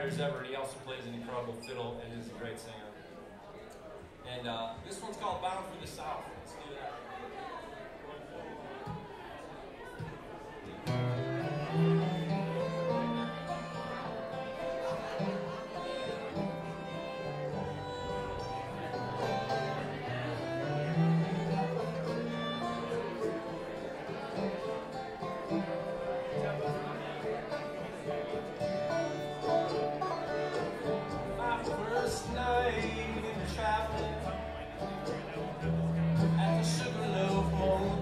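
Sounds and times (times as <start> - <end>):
bluegrass band playing: 0.0 - 3.1, 10.6 - 38.0
upright bass notes: 29.0 - 38.0.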